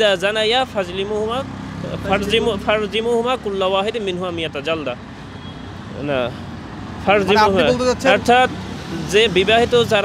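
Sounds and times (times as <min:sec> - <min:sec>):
road traffic hum: 0:00.0 - 0:10.0
person speaking: 0:07.0 - 0:08.6.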